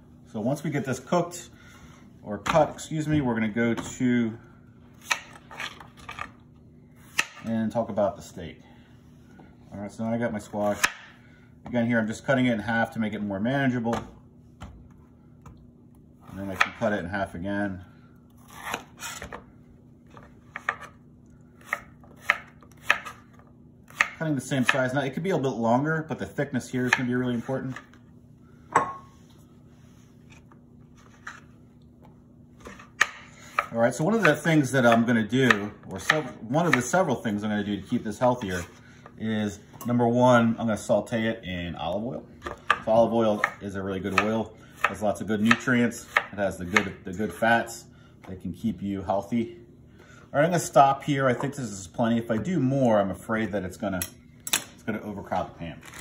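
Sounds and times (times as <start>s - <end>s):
steady low hum: 0.0s - 56.0s
knife cutting through squash: 18.4s - 19.4s.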